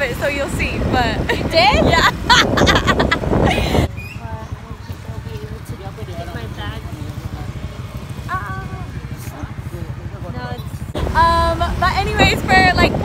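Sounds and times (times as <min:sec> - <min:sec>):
wind on microphone: 0:00.0 - 0:04.7, 0:10.9 - 0:13.0
people laughing: 0:01.3 - 0:04.0
motorcycle engine idling: 0:03.8 - 0:12.8.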